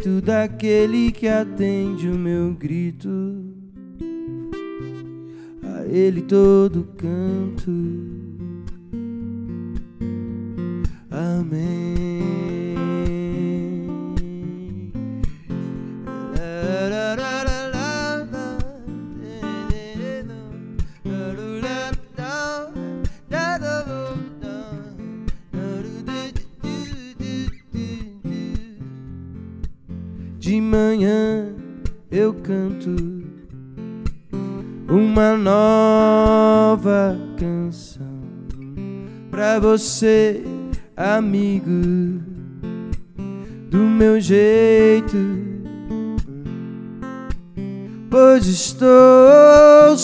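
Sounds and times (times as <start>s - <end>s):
man singing: 0.0s - 3.8s, 5.5s - 8.5s, 11.0s - 15.0s, 16.0s - 29.0s, 30.3s - 33.5s, 34.8s - 42.4s, 43.7s - 46.6s, 48.1s - 50.0s
acoustic guitar strums: 0.0s - 50.0s.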